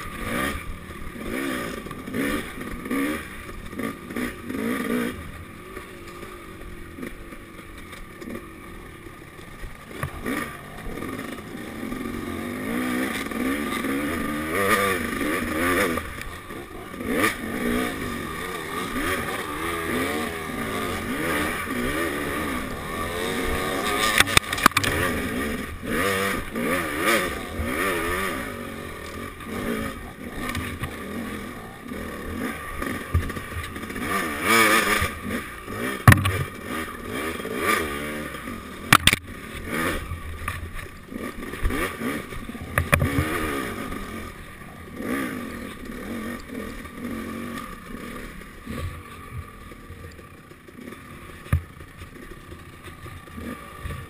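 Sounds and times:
dirt bike engine revving: 0.0 - 54.0
bike knocking over bumps: 36.0 - 36.6.

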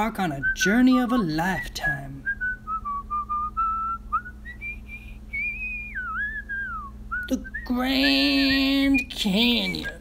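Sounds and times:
faint low hum: 0.0 - 10.0
whistled tune: 0.4 - 7.9.

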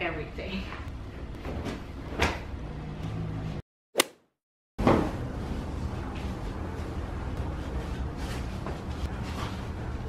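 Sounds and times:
short sharp swish: 4.0 - 4.3.

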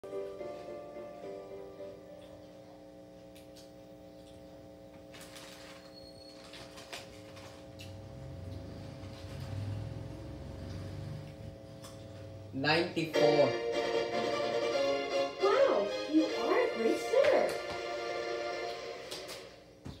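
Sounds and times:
karaoke machine chord tones: 0.0 - 2.9, 12.3 - 19.1.

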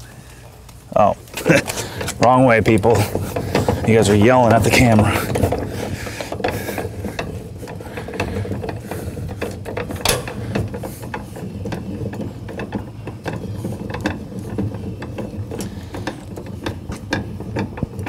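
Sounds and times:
jack gears clicking: 1.2 - 18.0.

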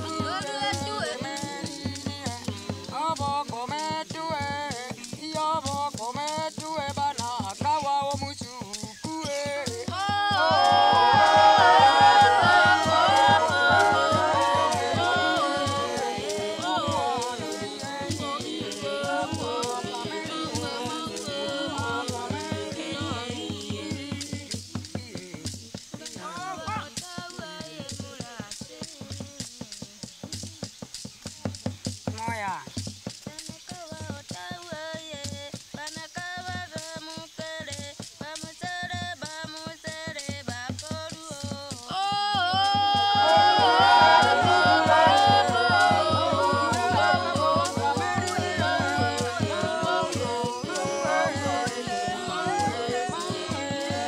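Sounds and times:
polyphonic group singing: 0.0 - 30.7, 33.2 - 54.0
clicking percussion beat: 0.0 - 54.0.

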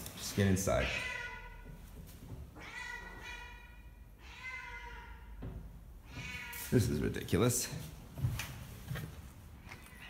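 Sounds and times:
cat meowing: 0.7 - 1.8, 2.6 - 5.4, 6.0 - 6.8.

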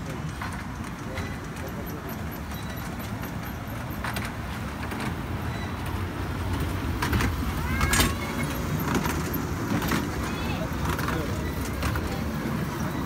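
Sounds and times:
ride-on train rumbling: 0.0 - 13.0
short squeak: 2.5 - 3.1, 5.4 - 6.0.

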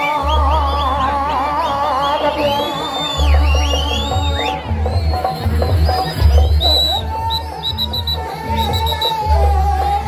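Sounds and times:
deep drum: 3.2 - 10.0.

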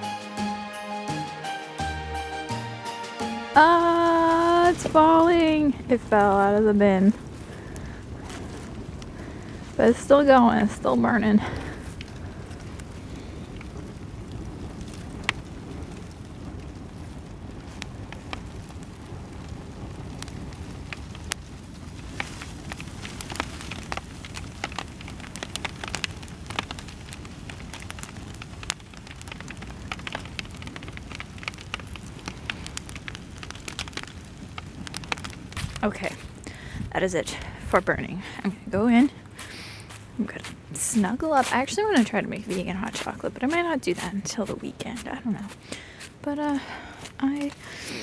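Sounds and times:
fire crackling with sharp snaps: 0.0 - 48.0
low rush of fire: 1.1 - 48.0.

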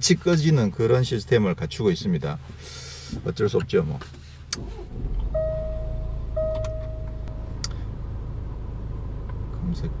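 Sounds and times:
diesel engine starting and idling: 4.4 - 10.0
electronic chime tones: 5.3 - 7.3.

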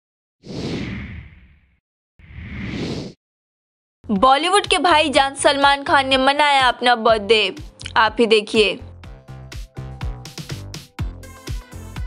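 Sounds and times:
whoosh sound effect: 2.2 - 3.2.

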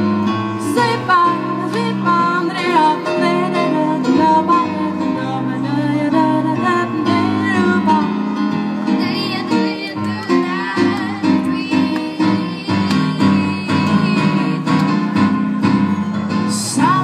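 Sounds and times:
instrumental accompaniment: 0.0 - 17.0
woman and girl singing a duet: 0.6 - 8.0, 9.0 - 14.6.

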